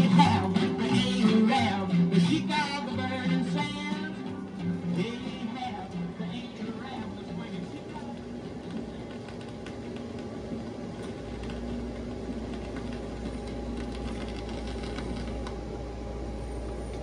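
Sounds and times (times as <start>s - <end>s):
vinyl crackles and clicks: 0.0s - 16.0s
low hum: 0.0s - 17.0s
vinyl surface hiss: 0.0s - 17.0s.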